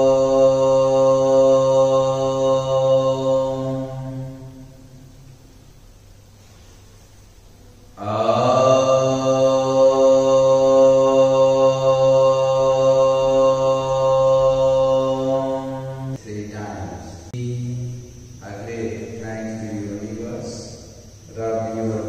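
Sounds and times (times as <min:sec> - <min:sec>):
man chanting low syllable: 0:00.0 - 0:05.2, 0:08.0 - 0:22.0.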